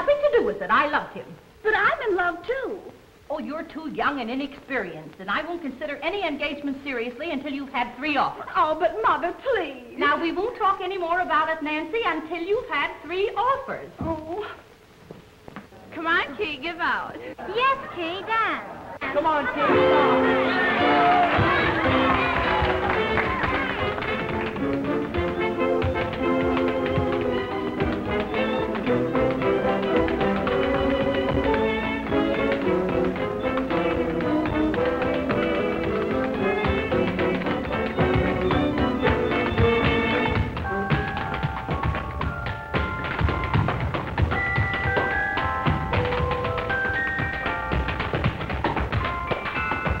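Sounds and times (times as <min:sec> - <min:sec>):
dance band music: 0:19.0 - 0:50.0
tap shoes clicking on hard floor: 0:20.4 - 0:50.0.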